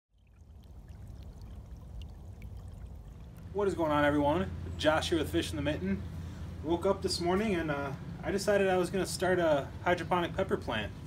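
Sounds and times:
stream trickling over stones: 0.1 - 4.5.

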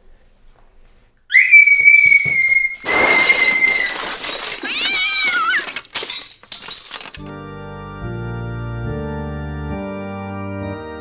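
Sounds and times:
girl screaming: 1.3 - 5.7
loud crashing and clattering: 2.8 - 7.3.

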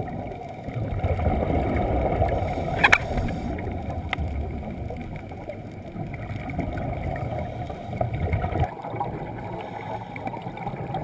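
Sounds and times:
muffled underwater rumble: 0.0 - 11.0
sharp clicks: 2.8 - 3.4.

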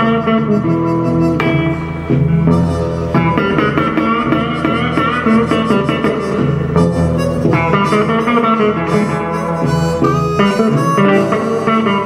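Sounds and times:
blues band playing: 0.0 - 12.0
blues harmonica: 0.0 - 12.0.

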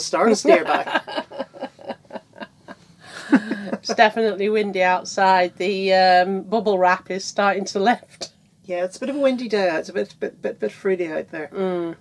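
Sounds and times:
woman laughing: 0.4 - 4.1.

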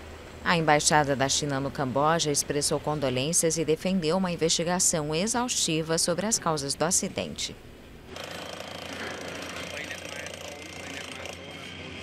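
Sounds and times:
people talking: 0.5 - 7.6, 9.5 - 11.9
machinery hammering rattle: 8.1 - 11.8.

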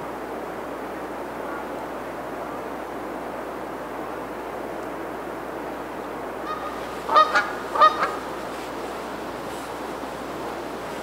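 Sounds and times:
background hiss: 0.0 - 11.0
goose honking: 6.5 - 8.5.

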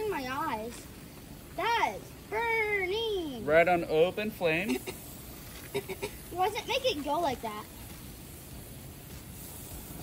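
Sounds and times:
fish sizzling on grill: 0.0 - 10.0
gas grill hissing: 0.0 - 10.0.

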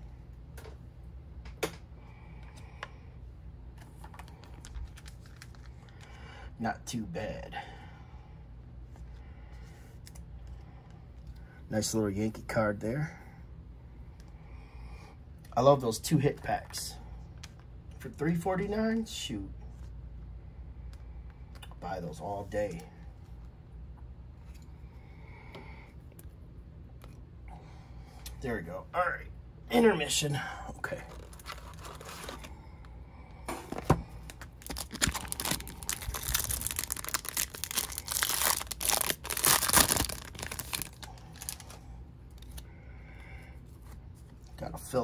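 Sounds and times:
steady low hum: 0.0 - 45.0
trading cards and wrappers handled: 3.7 - 6.3, 30.8 - 42.7.

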